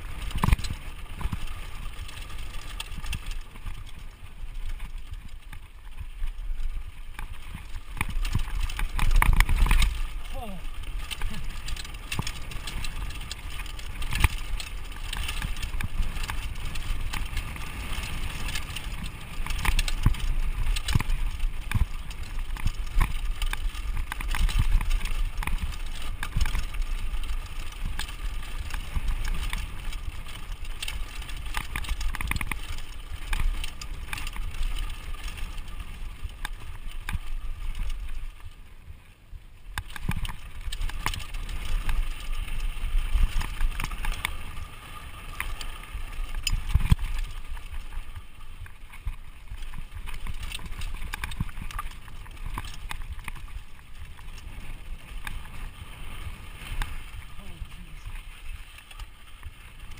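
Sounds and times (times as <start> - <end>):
tyres crunching over dirt: 0.0 - 39.0, 39.6 - 59.9
bike chain and frame rattling: 0.0 - 59.9
wind rumbling on microphone: 0.0 - 59.9.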